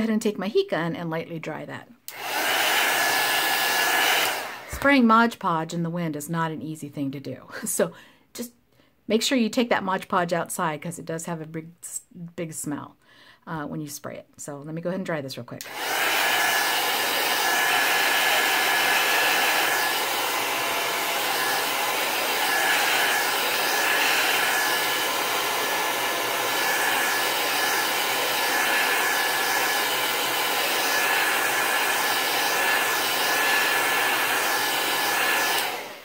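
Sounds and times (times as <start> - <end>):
heat gun blowing air: 2.1 - 4.9, 15.6 - 36.0.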